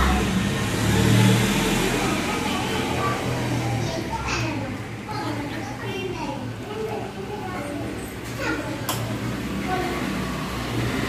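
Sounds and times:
low engine-like hum: 0:00.0 - 0:11.0.

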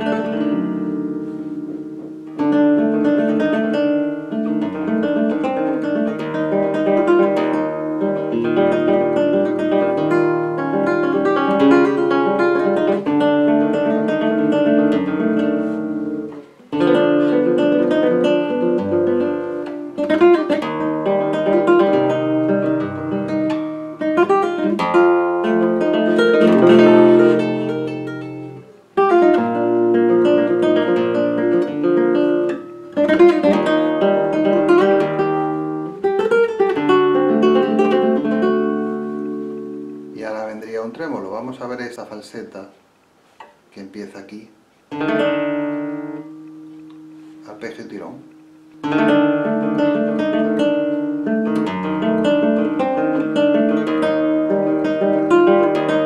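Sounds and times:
flamenco guitar arpeggios: 0:00.0 - 0:42.6, 0:44.9 - 0:56.0.

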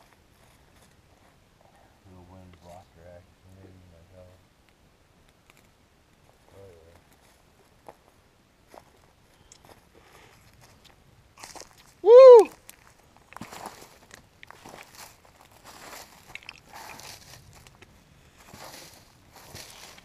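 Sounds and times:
footsteps in dry leaves: 0:09.7 - 0:12.0, 0:12.6 - 0:20.0
man whooping: 0:12.0 - 0:12.6.

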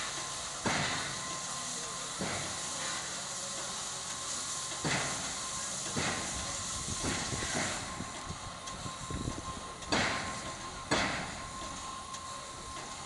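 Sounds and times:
steam hissing: 0:00.0 - 0:13.0.

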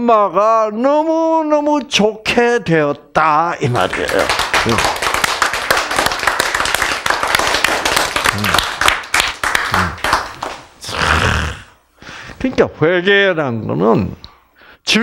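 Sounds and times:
group applauding: 0:03.6 - 0:11.3.

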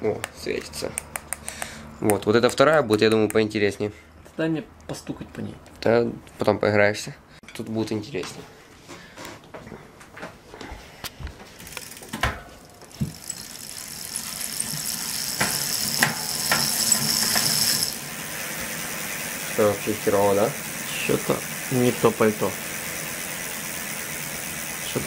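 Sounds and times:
bicycle wheel whirring with ticking hub: 0:11.6 - 0:25.0
knocks on bicycle wheel: 0:12.9 - 0:13.3.

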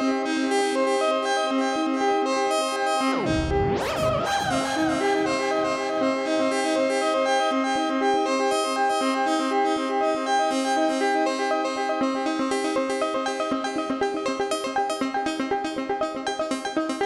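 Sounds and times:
synthesizer note sequence: 0:03.1 - 0:06.3
synth pitch sweep: 0:03.1 - 0:06.4.

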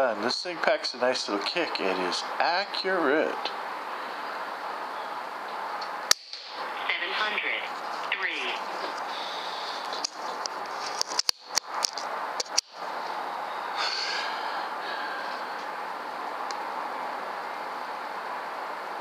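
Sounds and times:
background hiss: 0:12.2 - 0:19.0.

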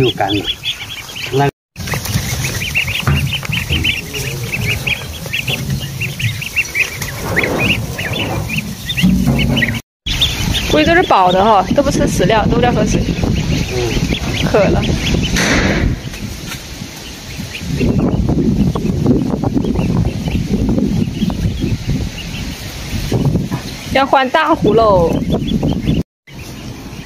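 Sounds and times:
ducklings peeping: 0:00.0 - 0:27.0
low rumble: 0:02.0 - 0:16.4.

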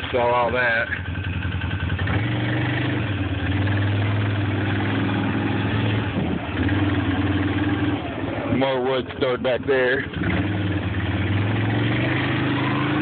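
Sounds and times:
quad bike engine running: 0:00.0 - 0:13.0.

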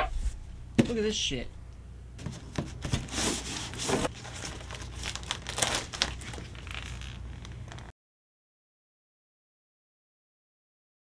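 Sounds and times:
plastic sheeting crinkling: 0:02.8 - 0:07.9.

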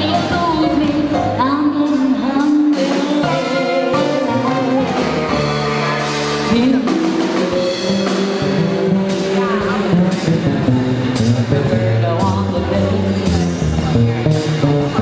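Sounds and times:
woman singing: 0:00.0 - 0:05.5, 0:06.4 - 0:08.1, 0:11.5 - 0:13.6
drum kit steady beat: 0:00.0 - 0:15.0
saxophone: 0:00.0 - 0:15.0
upright bass: 0:00.0 - 0:15.0.

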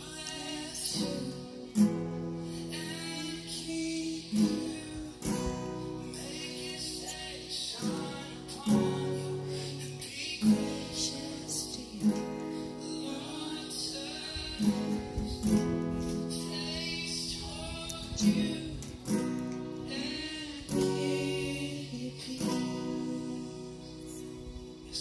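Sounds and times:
acoustic guitar strummed slowly: 0:00.0 - 0:25.0.

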